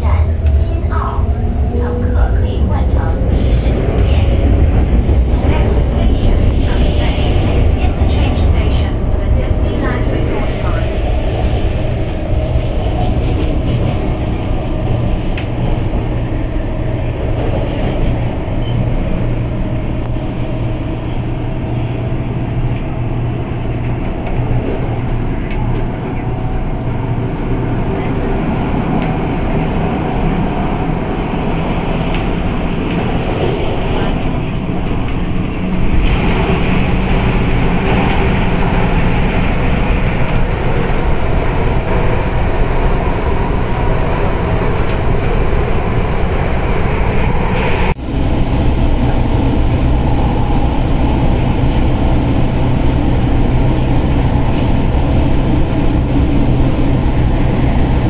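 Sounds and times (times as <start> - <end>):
train wheels and motors rumbling: 0.0 - 58.0.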